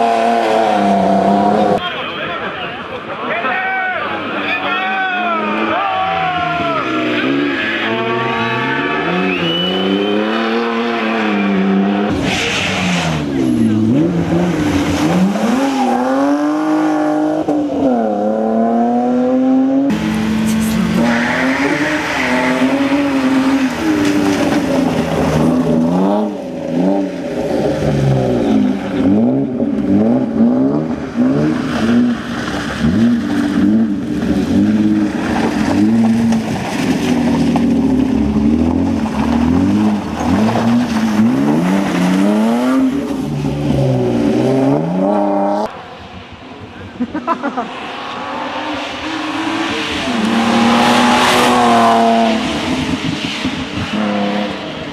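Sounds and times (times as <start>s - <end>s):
car engine revving hard: 0.0s - 1.8s, 5.2s - 45.8s, 47.5s - 54.9s.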